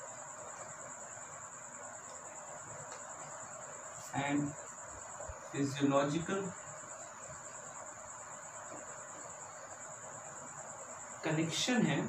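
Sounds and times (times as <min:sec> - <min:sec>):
crickets trilling: 0:00.0 - 0:12.0
room hiss: 0:00.0 - 0:12.0.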